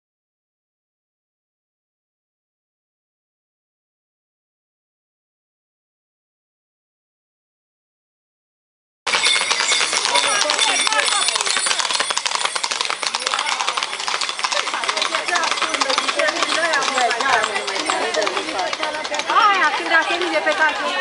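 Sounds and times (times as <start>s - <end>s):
ringing bell: 9.1s - 20.6s
horses clattering on pavement: 9.1s - 21.0s
onlookers calling and talking: 9.1s - 21.0s.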